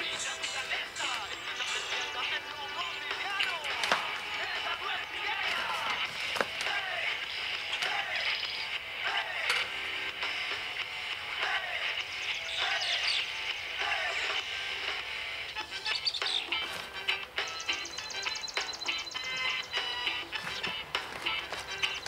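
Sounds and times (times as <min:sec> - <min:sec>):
background music score: 0:00.0 - 0:22.0.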